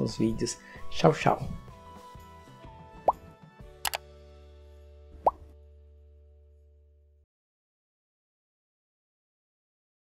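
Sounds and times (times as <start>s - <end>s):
background music: 0.0s - 6.9s
sharp double click: 3.8s - 4.0s.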